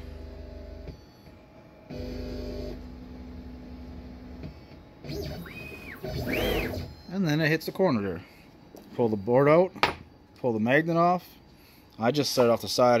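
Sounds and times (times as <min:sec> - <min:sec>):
stepper motors whining: 0:05.0 - 0:07.1.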